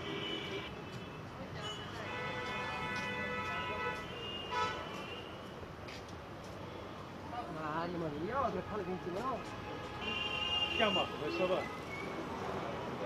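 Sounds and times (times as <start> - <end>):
road traffic: 0.0 - 13.0
vehicle horn: 1.6 - 5.3.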